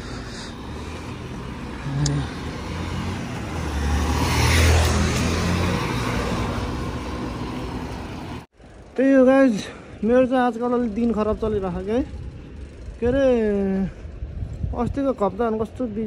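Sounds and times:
vehicle passing: 0.0 - 8.5
road traffic: 0.0 - 16.0
wind rushing over microphone: 11.2 - 16.0.

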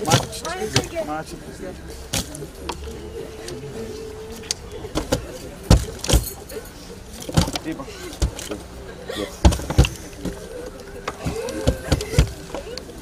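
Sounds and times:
murmur of voices: 0.0 - 13.0
trowel knocking and scraping earth: 9.4 - 10.4.

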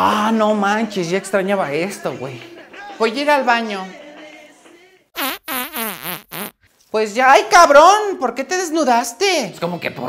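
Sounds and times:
short pitched fart noises: 5.2 - 6.6.

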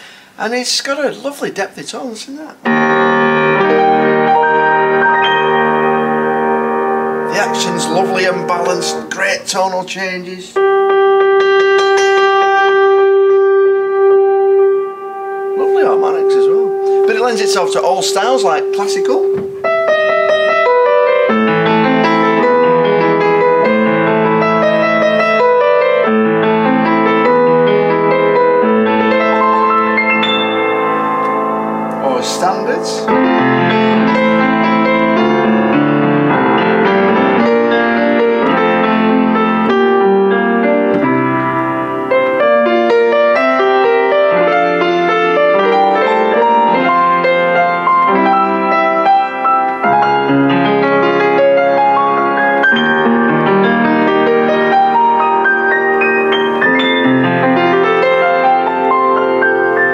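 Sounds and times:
upright piano playing: 0.0 - 59.9.

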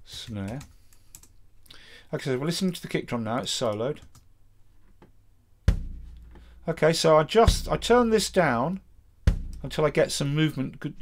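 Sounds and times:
bass drum boom: 5.7 - 6.7, 7.4 - 8.4, 9.2 - 10.0.

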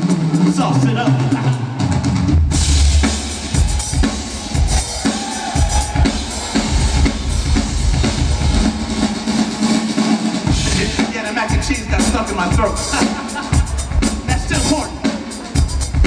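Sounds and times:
drum kit solo: 0.0 - 16.0.

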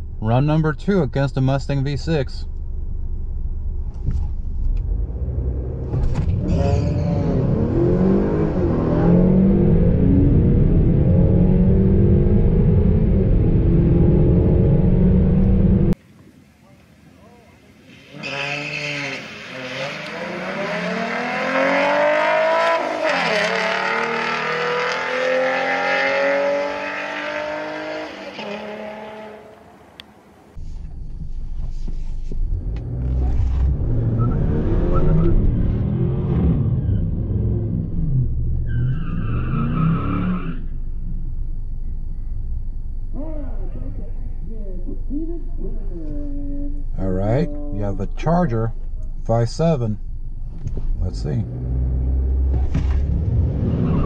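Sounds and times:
car engine idling rumble: 0.0 - 7.3, 30.0 - 34.2, 40.6 - 53.2
car engine accelerating hard: 4.5 - 16.0, 18.4 - 29.8, 32.5 - 40.7, 50.5 - 54.0
racing cars passing by: 18.0 - 30.0.

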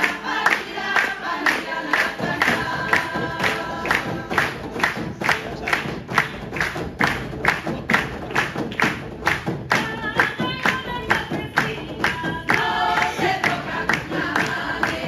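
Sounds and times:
women's group singing: 0.0 - 5.1, 9.8 - 15.0
frame drums and tambourines: 2.0 - 15.0.

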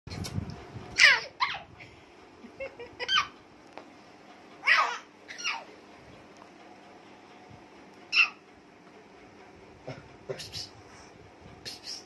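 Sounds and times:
baby squealing: 1.0 - 1.7, 4.6 - 5.7.

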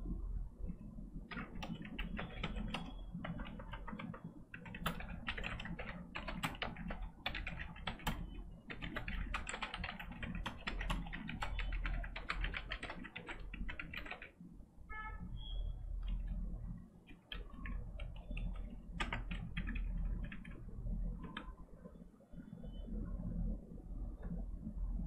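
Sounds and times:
steady low hum: 0.0 - 25.0
typing on computer keyboard: 1.3 - 14.4, 16.0 - 21.6.

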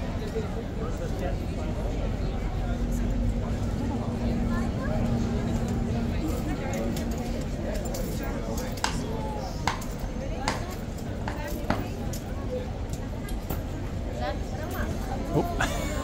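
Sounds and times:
indistinct chatter: 0.0 - 16.0.

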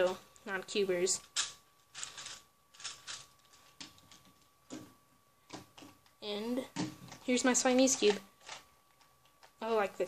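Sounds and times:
plastic puzzle pieces clicking: 1.3 - 4.3, 7.9 - 9.5.

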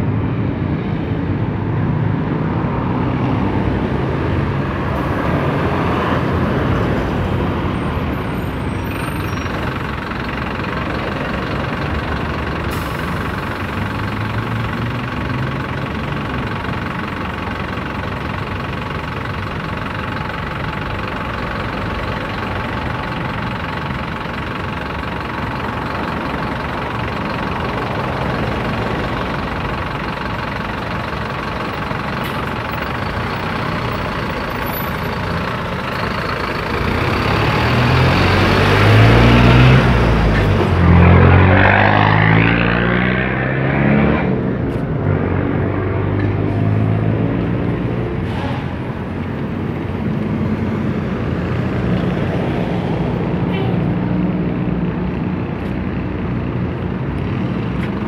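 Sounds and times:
bus diesel engine whining: 0.0 - 58.0
traffic noise: 0.0 - 58.0.

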